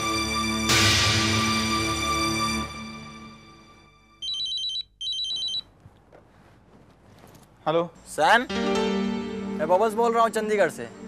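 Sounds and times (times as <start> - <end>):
background music: 0.0 - 4.3, 8.0 - 11.0
telephone ringing: 4.2 - 5.7.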